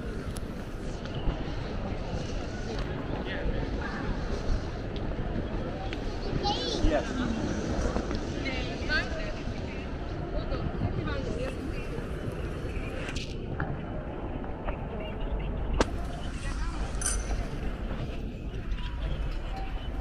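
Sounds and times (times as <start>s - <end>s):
voices of passing travellers: 0.0s - 20.0s.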